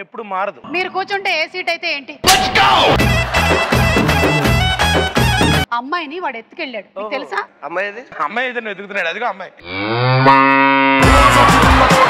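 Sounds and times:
long low moo: 0:09.6 - 0:11.1.

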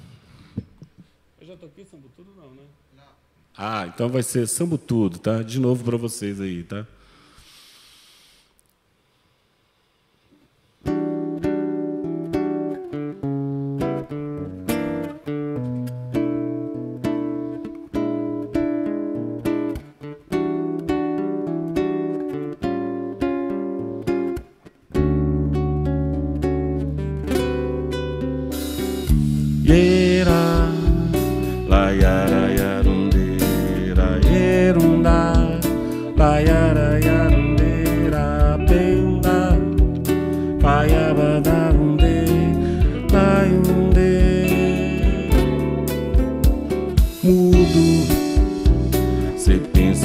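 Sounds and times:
guitar rhythmic chords: 0:10.8 - 0:50.0
bass guitar: 0:11.0 - 0:50.0
drums with cymbals: 0:28.6 - 0:36.6, 0:41.7 - 0:50.0.

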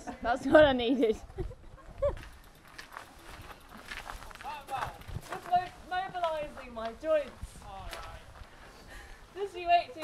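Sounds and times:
footsteps on hard ground: 0:02.0 - 0:08.7.

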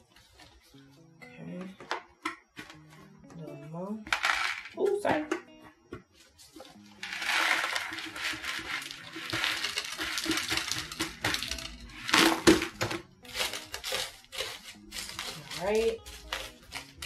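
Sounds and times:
granules pouring and rattling: 0:07.0 - 0:12.7.

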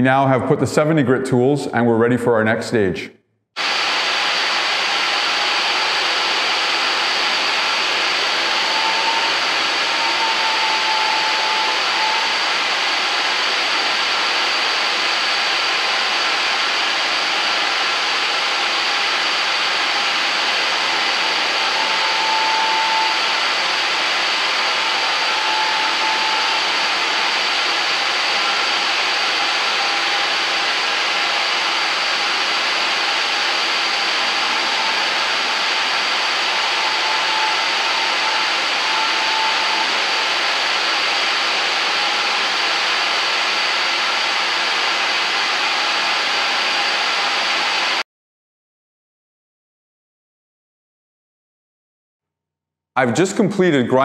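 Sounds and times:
dust extractor vacuum hiss: 0:03.6 - 0:48.0
floor grinder whine: 0:03.6 - 0:48.0.

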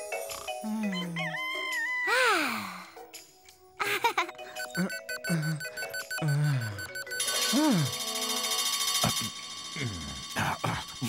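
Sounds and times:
light music: 0:00.0 - 0:11.0.

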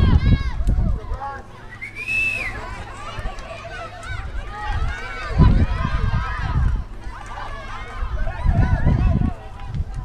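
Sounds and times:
people shouting: 0:00.0 - 0:10.0
microphone rumble: 0:04.1 - 0:07.2, 0:08.0 - 0:10.0.

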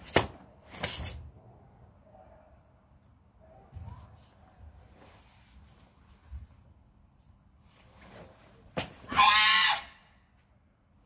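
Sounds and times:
loud high-pitched shout: 0:09.1 - 0:10.0.

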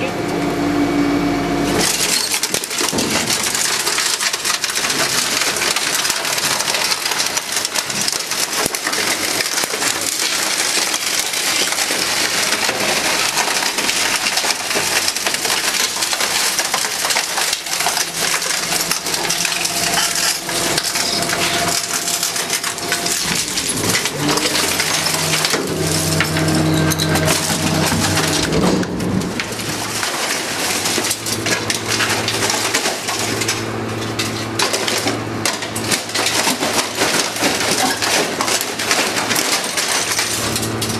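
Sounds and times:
metal and plastic crackling and creaking: 0:01.8 - 0:40.9
hydraulics whining: 0:13.1 - 0:40.9.

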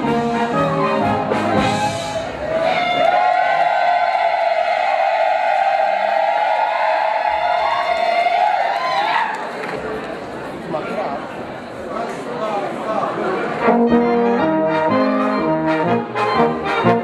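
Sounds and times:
brass band playing dance music: 0:00.0 - 0:03.6, 0:13.6 - 0:17.0.

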